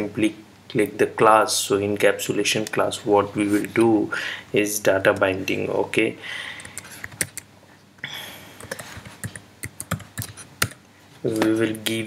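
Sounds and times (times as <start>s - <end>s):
keyboard keys clicking: 8.6s - 10.8s.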